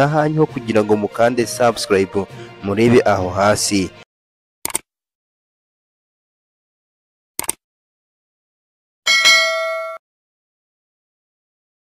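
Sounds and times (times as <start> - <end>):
cursor click: 4.6 - 4.9, 7.4 - 7.6
bright bell ding: 9.1 - 10.0.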